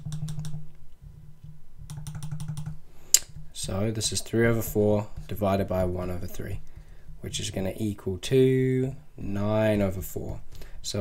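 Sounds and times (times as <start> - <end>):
digital pen tapping on tablet: 0.0 - 0.6, 1.4 - 3.5
low steady hum: 0.0 - 11.0.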